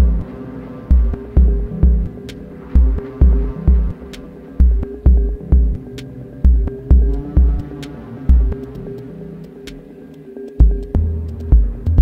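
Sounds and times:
deep heavy bass hits: 0.0 - 0.3, 0.9 - 2.2, 2.8 - 4.0, 4.6 - 5.9, 6.5 - 7.6
held synth tone: 0.0 - 10.8.

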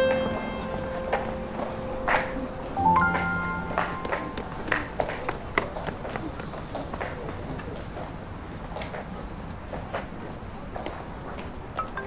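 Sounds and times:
high heels clicking: 0.0 - 12.0
footsteps on stone paving: 0.2 - 12.0.

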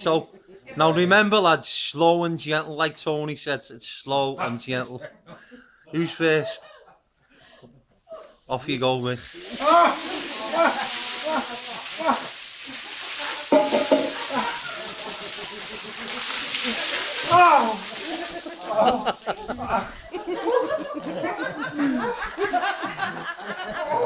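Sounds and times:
water pouring and splashing: 9.0 - 21.2
people shouting and yelping: 9.3 - 12.4, 13.2 - 15.3, 16.6 - 20.1.

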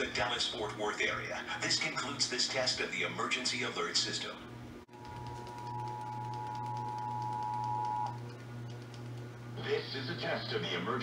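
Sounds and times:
low steady hum: 0.0 - 11.0
two-tone alert signal: 5.6 - 8.2.

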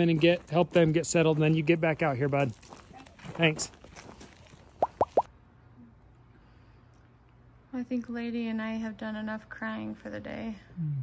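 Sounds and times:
quick upward-sweeping plops: 4.8 - 5.3.

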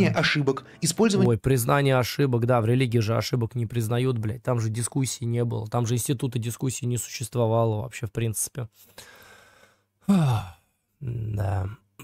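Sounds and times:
man sighing: 9.0 - 10.7.

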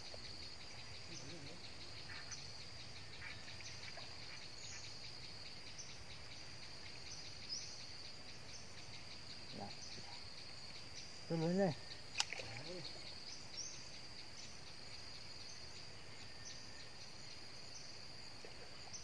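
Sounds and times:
insects trilling: 0.0 - 19.0.

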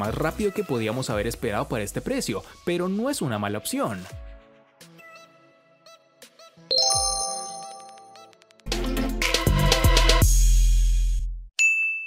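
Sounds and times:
bell-like chime: 6.7 - 8.3.

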